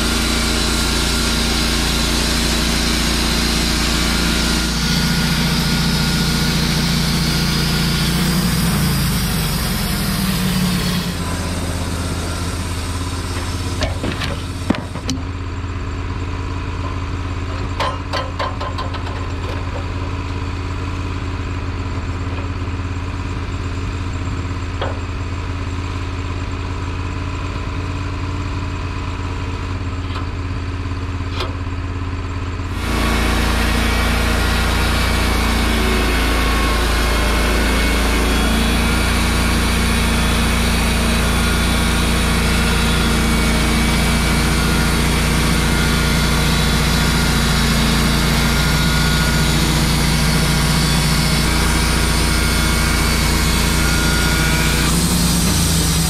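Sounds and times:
sawmill engine running: 0.0s - 56.0s.

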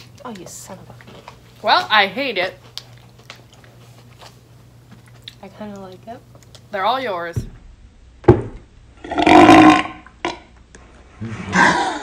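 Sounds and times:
person burping loudly: 9.0s - 10.5s, 11.4s - 12.0s
person laughing: 11.2s - 12.0s.

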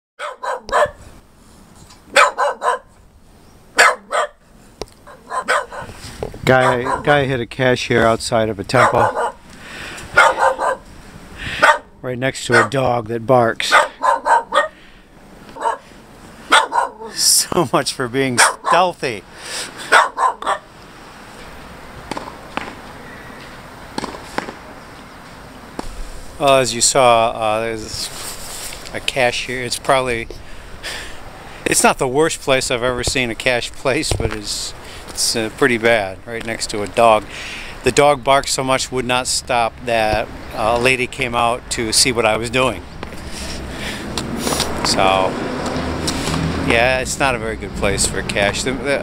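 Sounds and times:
dog barking: 0.2s - 1.0s, 2.1s - 2.9s, 3.8s - 4.4s, 5.0s - 5.9s, 6.6s - 7.1s, 8.8s - 9.4s, 10.1s - 10.8s, 11.6s - 11.9s, 12.5s - 12.8s, 13.7s - 14.8s, 15.6s - 15.8s, 16.5s - 17.2s, 18.4s - 18.9s, 19.9s - 20.7s.

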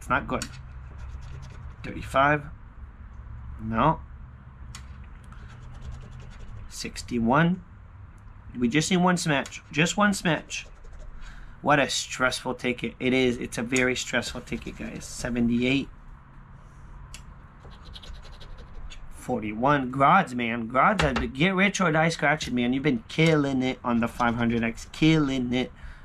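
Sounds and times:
coin scratching lottery ticket: 0.6s - 2.1s, 5.4s - 7.0s, 9.8s - 11.3s, 14.2s - 15.4s, 17.6s - 19.1s, 24.0s - 25.4s
coin scraping lottery ticket: 14.2s - 15.3s.

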